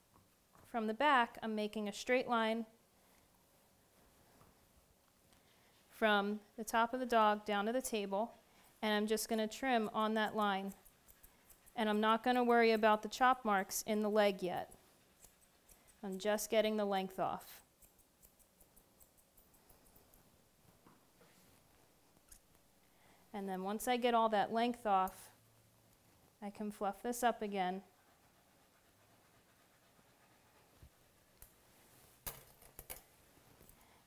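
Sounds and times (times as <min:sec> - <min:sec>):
grooming shears snipping: 0:09.6 - 0:20.1.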